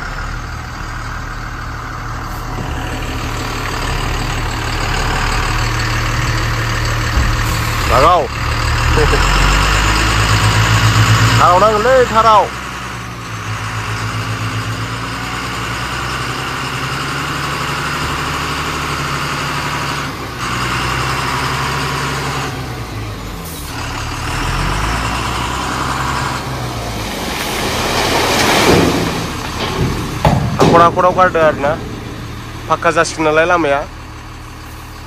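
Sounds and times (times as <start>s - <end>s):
heavy vehicle engine running: 0.0s - 35.0s.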